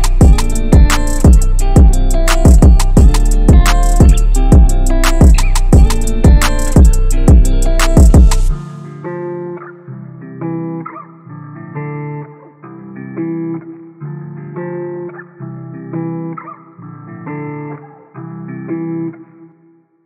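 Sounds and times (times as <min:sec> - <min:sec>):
muffled plucked guitar melody: 0:00.0 - 0:20.0.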